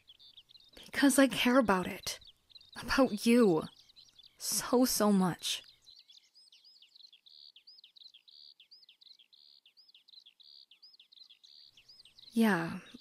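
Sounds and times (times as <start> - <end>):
faint birdsong chirps: 0.0 - 13.0.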